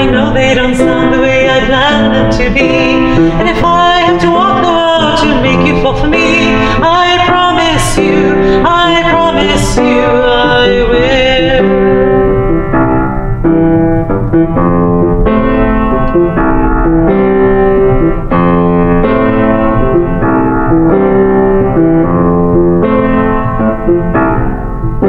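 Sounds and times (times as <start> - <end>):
electronic keyboard piano chords: 0.0 - 25.0.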